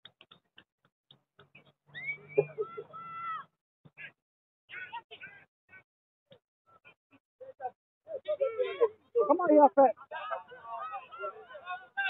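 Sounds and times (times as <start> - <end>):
long high-pitched shout: 2.6 - 3.5.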